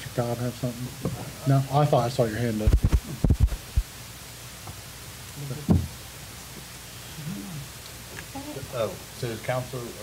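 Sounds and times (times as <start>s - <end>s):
person murmuring: 7.2s - 7.7s.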